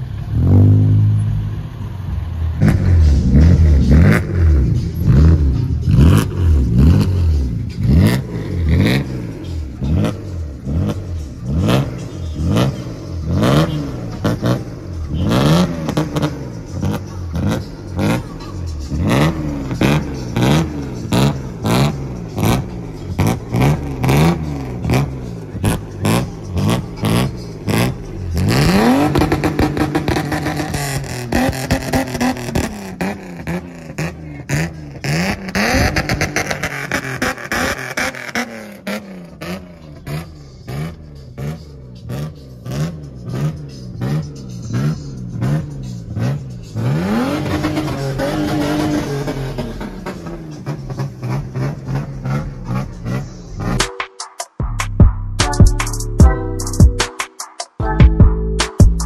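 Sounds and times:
car engine revving: 0.0s - 53.9s.

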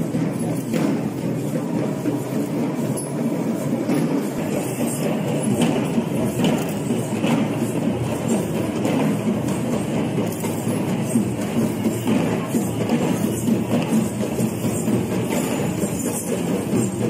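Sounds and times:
marching drum troupe drumming: 0.0s - 17.0s.

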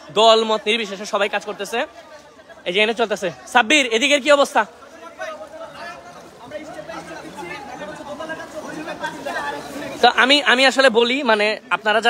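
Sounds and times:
distant people chattering: 0.0s - 12.0s.

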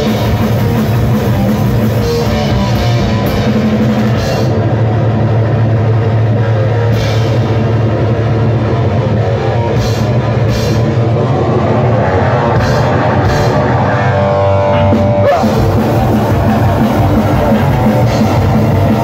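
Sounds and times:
fast drum kit: 0.0s - 14.1s, 14.7s - 19.0s
bass guitar: 0.0s - 19.0s
distorted electric guitar: 0.0s - 19.0s.

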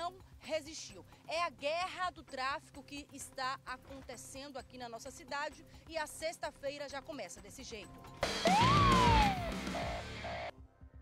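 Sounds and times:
siren-like tone sliding down: 8.4s - 10.5s.

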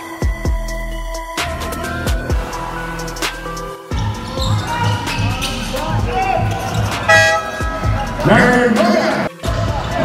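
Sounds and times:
players calling out: 3.9s - 10.0s
loud buzzer blast: 7.0s - 8.7s.

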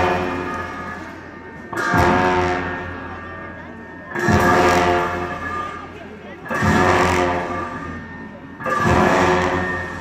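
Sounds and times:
large cymbals clashing: 0.0s - 3.4s, 4.1s - 10.0s.

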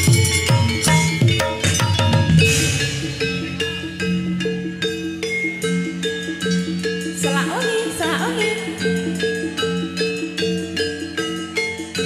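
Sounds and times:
gamelan music: 0.0s - 12.0s.

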